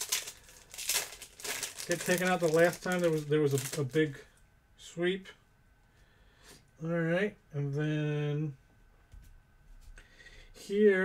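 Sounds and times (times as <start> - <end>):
wrapper and cards crinkling: 0.0 - 4.2
man speaking: 1.8 - 5.4.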